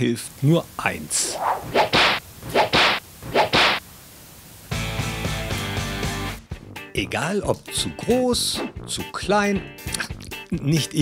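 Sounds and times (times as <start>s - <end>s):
whoosh sound effects: 1.2s - 3.8s.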